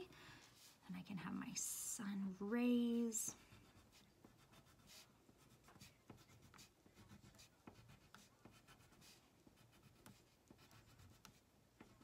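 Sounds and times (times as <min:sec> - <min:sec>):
crayon scratching on paper: 0:03.3 - 0:12.0.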